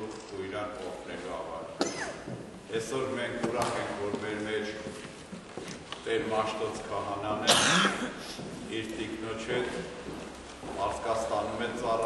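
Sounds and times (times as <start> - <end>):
man talking: 0.0 - 5.0, 6.0 - 12.0
loud cough: 1.8 - 2.3, 7.4 - 8.4.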